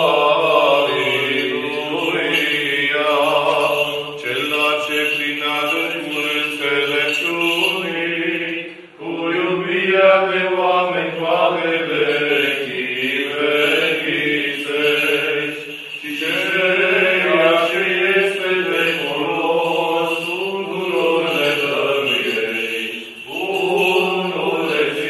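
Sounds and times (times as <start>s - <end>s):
voices chanting slow melody: 0.0s - 25.0s.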